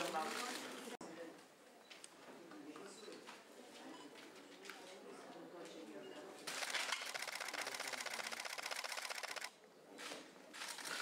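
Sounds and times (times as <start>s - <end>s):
camera shutters clicking: 6.5s - 9.5s.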